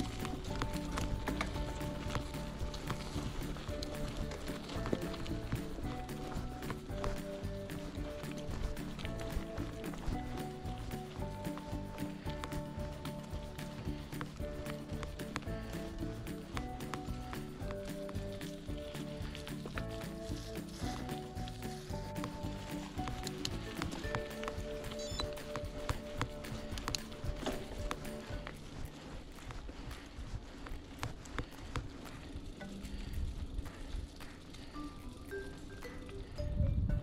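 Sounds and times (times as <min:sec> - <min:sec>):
mountain bike rattling on dirt trail: 0:00.0 - 0:37.0.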